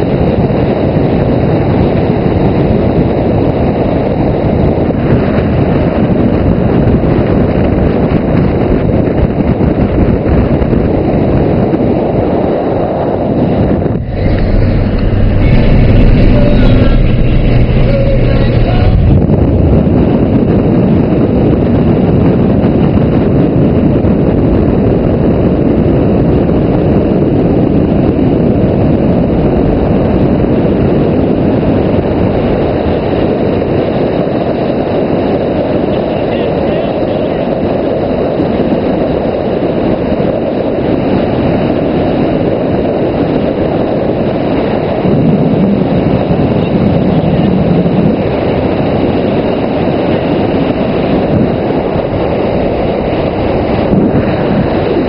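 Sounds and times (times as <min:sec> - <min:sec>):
wind rush: 0:00.0 - 0:55.0
road noise: 0:12.4 - 0:21.0, 0:44.4 - 0:55.0
steady low hum: 0:13.1 - 0:22.1, 0:45.1 - 0:55.0.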